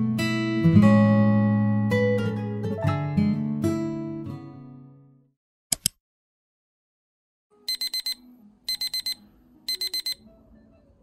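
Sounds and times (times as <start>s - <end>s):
alarm clock beeping: 7.7s - 10.2s.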